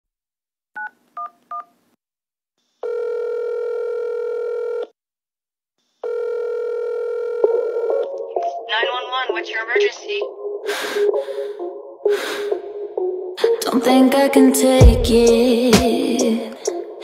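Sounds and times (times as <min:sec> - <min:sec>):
telephone ringback tones: 0:02.8 - 0:04.9, 0:06.0 - 0:08.1.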